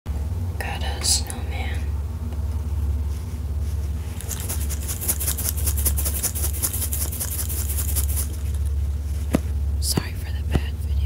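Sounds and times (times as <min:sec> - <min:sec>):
steady low hum: 0:00.1 - 0:11.0
fingers rubbing plush fabric: 0:03.0 - 0:10.8.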